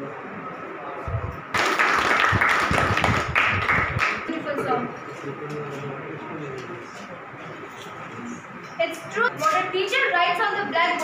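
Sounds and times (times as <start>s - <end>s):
children applauding: 1.5s - 4.2s.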